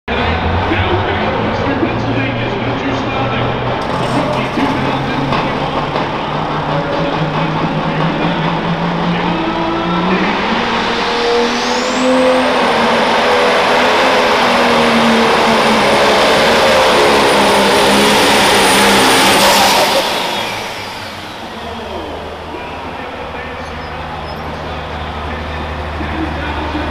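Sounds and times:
diesel tractor engine at full throttle: 0.1 - 26.9.

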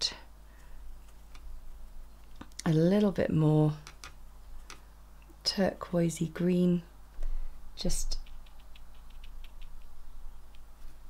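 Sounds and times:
paintbrush ticking on paper: 8.1 - 10.7.

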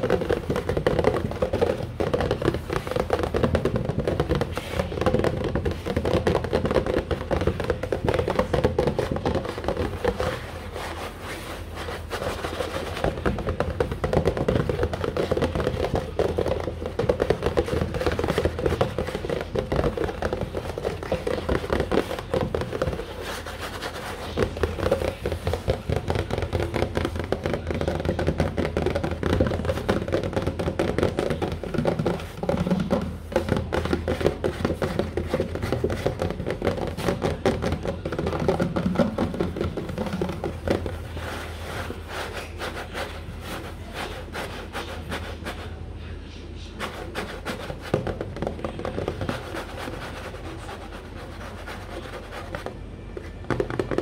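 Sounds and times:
fingernails tapping on cardboard box: 0.0 - 10.8, 11.8 - 45.7.

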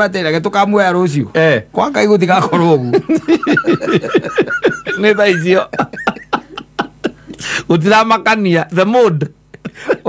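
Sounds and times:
men laughing: 2.4 - 7.7, 9.3 - 10.0.

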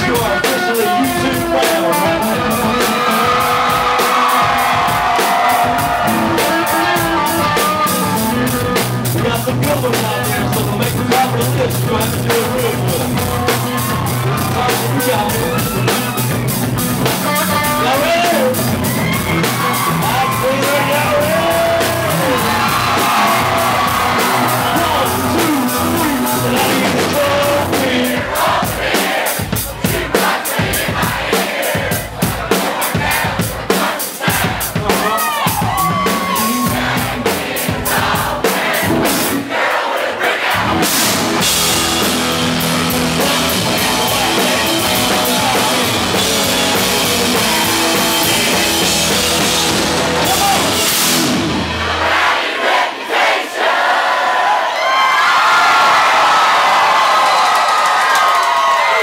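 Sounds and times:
country-rock band playing: 0.0 - 52.3
drums hitting fast and hard: 0.0 - 52.6
crowd cheering and shouting: 0.0 - 59.0
crowd singing along: 20.0 - 35.2, 36.2 - 54.8.

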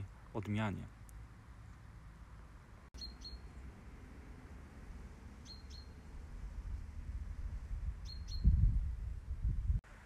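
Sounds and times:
small bird chirping: 3.0 - 3.6, 5.4 - 6.2, 8.0 - 8.8.

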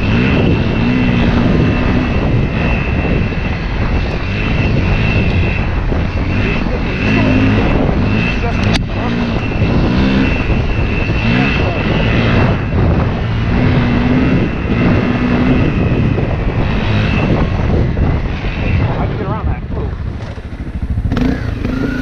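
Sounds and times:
dirt bike engine revving: 0.0 - 17.8, 19.9 - 22.0.

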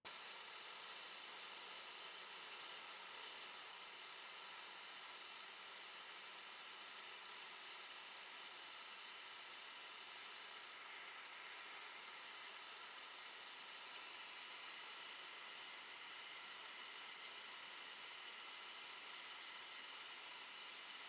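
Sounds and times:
compressed air hissing: 0.2 - 21.0.

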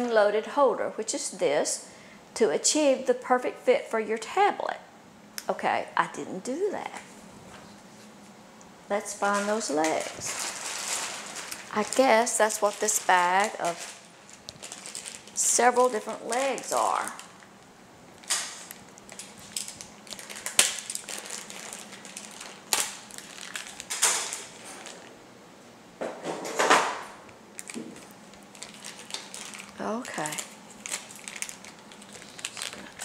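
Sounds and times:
plastic parts rattling: 9.2 - 17.4, 18.2 - 25.1, 27.6 - 33.0
plastic bag crinkling: 9.2 - 25.2, 27.5 - 33.0.

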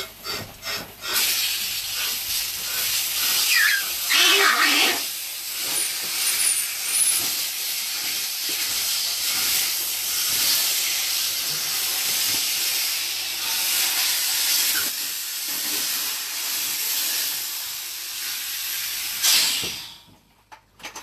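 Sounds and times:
compressed air hissing: 18.0 - 20.1
burst of air: 18.8 - 20.1.

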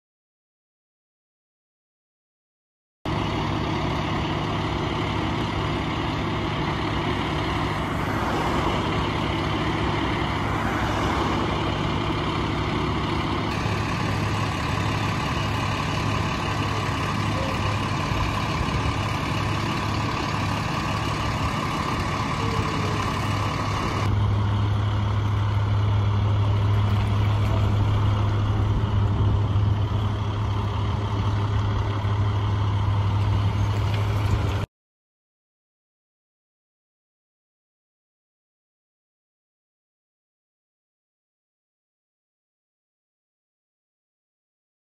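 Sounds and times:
diesel engines humming: 3.1 - 34.7.

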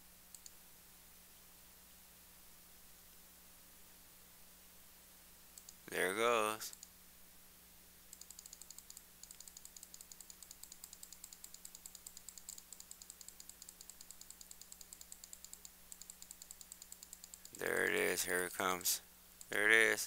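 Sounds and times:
faint steady hum: 0.0 - 20.0
rapid mouse clicking: 0.3 - 0.6, 5.6 - 6.0, 6.6 - 6.9, 8.1 - 18.6, 19.4 - 19.6.

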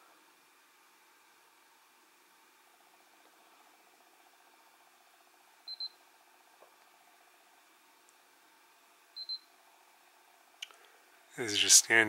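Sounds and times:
high-pitched camera beeps: 5.7 - 6.0, 9.2 - 9.5.

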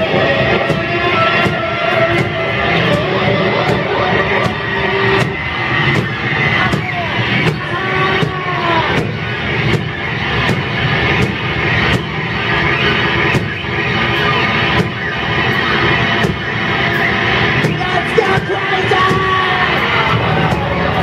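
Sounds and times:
distorted electric guitars: 0.0 - 21.0
loud metal band playing: 0.0 - 21.0.

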